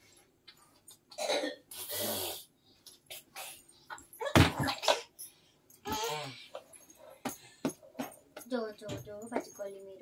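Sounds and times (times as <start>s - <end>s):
person coughing: 1.2s - 1.7s, 5.9s - 6.5s.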